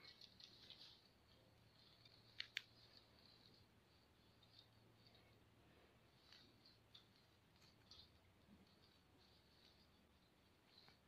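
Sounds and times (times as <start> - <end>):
dry pine needles crackling: 0.0 - 11.0.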